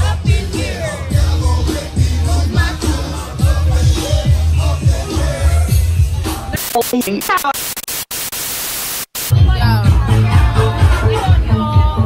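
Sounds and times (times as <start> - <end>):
music with heavy bass beat: 0.0 - 7.6, 9.2 - 12.0
tv static hiss: 6.5 - 9.4.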